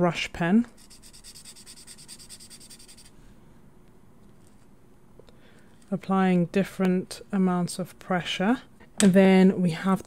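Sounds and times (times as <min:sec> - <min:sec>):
brush pen rubbing on paper: 0:00.8 - 0:03.2.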